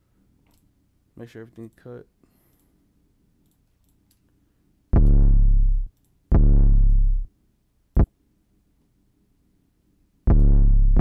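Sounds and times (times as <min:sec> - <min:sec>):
faint mouse clicks: 0:02.5 - 0:02.8
deep bass notes: 0:05.0 - 0:07.3, 0:10.3 - 0:11.0.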